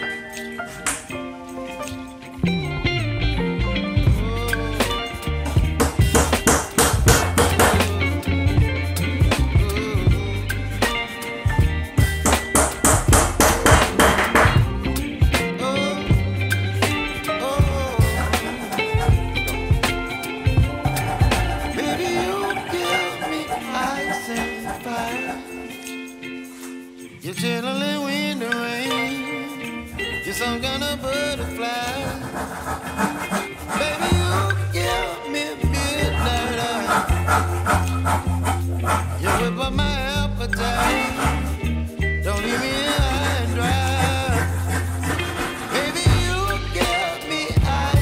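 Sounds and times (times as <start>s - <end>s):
background music with beat and guitar: 0.0s - 48.0s
handsaw cutting wood: 4.9s - 8.4s, 12.2s - 14.7s, 16.8s - 25.9s, 30.0s - 40.0s, 40.6s - 47.6s
hammer tapping nail into wood: 5.8s - 7.9s, 12.3s - 14.6s.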